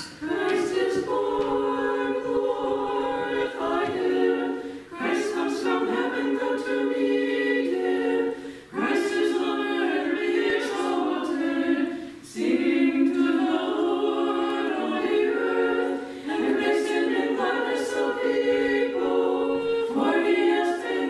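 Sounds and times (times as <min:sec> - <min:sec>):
choir chanting a cappella: 0:00.0 - 0:21.0.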